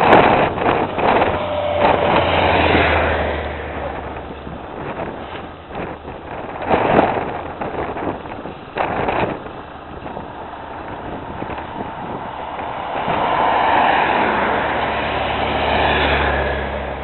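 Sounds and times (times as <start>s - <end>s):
motorcycles and car passing: 0.0s - 17.0s.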